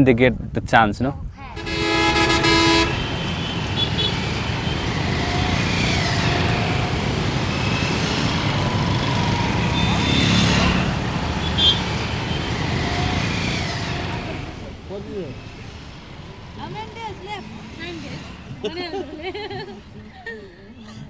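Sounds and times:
street traffic: 1.1s - 21.0s
vehicle horns honking: 1.5s - 14.6s.

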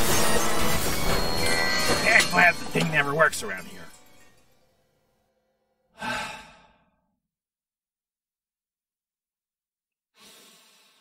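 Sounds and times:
person sighing: 6.0s - 6.9s.

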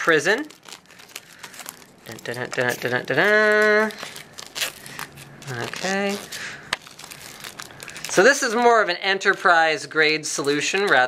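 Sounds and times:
plastic wrap tearing and crinkling: 0.0s - 11.0s.

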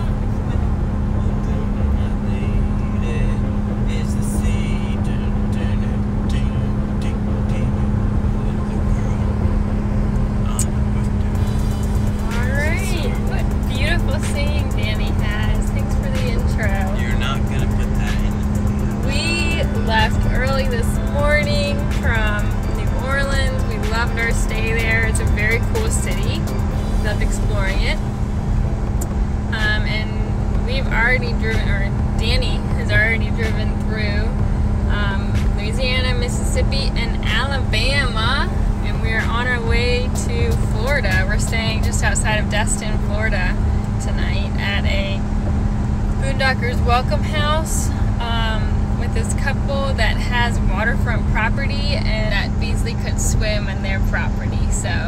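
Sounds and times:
music with singing: 0.0s - 55.0s
road and engine rumble in a car: 0.0s - 55.0s.

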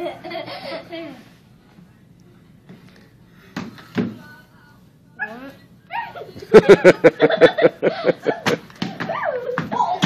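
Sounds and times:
girl imitating puppy yips: 5.2s - 6.3s.

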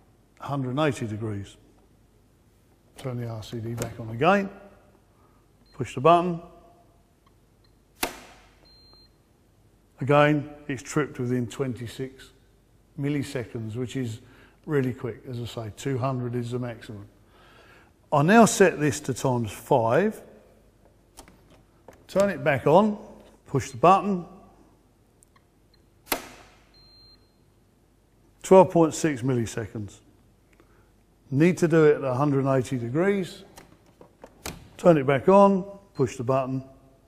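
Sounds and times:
circuit breaker snapping off: 8.0s - 8.6s, 21.1s - 22.4s, 26.0s - 26.7s.

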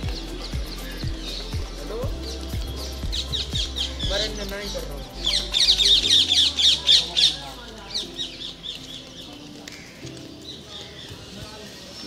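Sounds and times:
bird squawking: 0.0s - 10.0s.

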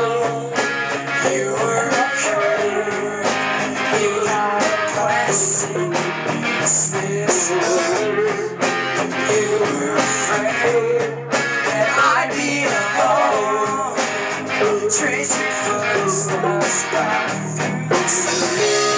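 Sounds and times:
live rock band playing: 0.0s - 18.9s.

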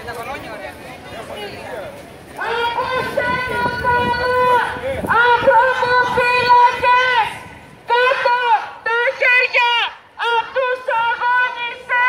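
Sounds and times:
woman chanting through a megaphone: 2.4s - 12.0s.

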